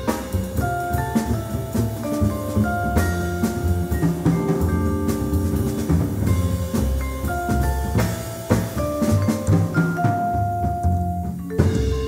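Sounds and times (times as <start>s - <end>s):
double bass: 0.0s - 12.0s
drum kit and cymbals: 0.0s - 12.0s
vibraphone notes: 0.0s - 12.0s.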